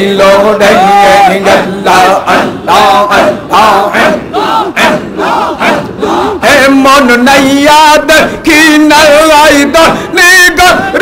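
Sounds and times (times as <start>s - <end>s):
men chanting rhythmically: 0.0s - 11.0s.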